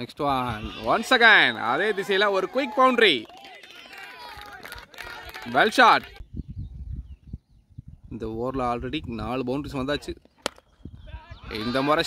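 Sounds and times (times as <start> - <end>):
man's voice: 11.1 - 12.0.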